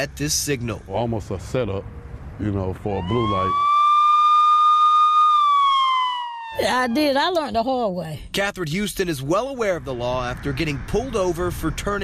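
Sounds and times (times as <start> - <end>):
police siren wailing: 2.8 - 7.6.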